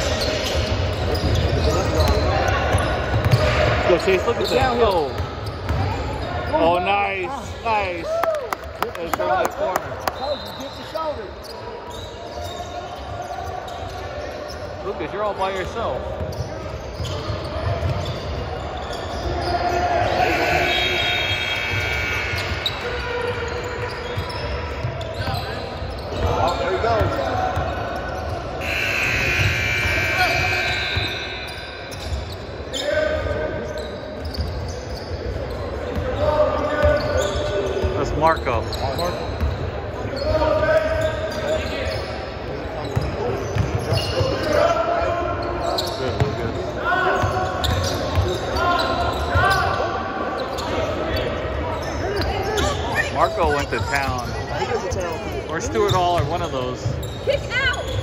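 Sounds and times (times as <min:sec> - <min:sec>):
voices echoing in a hall: 0:00.0 - 0:58.0.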